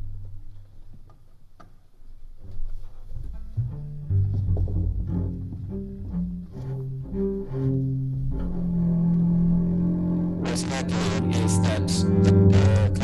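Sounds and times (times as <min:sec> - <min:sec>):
low layered clarinet drones: 0:08.4 - 0:13.0
synthesized resonating tones: 0:08.6 - 0:13.0.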